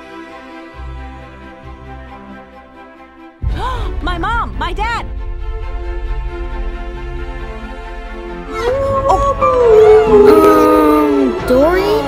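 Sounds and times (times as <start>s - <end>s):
killer whale calls: 8.5s - 11.5s.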